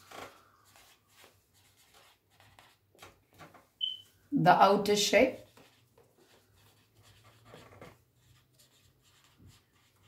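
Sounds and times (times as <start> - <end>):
marker scratching on paper: 0.7 - 2.8, 4.9 - 10.0.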